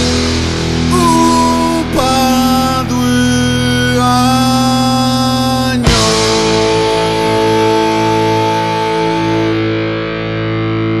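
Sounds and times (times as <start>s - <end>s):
distorted electric guitar chord: 0.0s - 11.0s.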